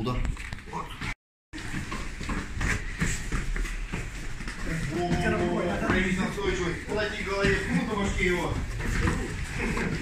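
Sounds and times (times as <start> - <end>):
feet shuffling and thudding on mats: 1.6 - 10.0.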